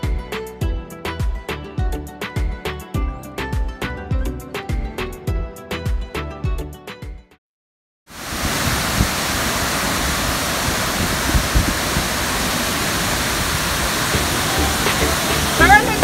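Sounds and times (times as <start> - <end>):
music: 0.0 - 7.4, 14.1 - 16.0
waterfall rushing: 8.1 - 16.0.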